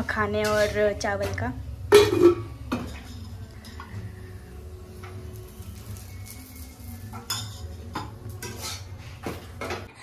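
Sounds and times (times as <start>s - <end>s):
metal clinking and scraping in pan: 0.0s - 4.0s, 5.5s - 10.0s.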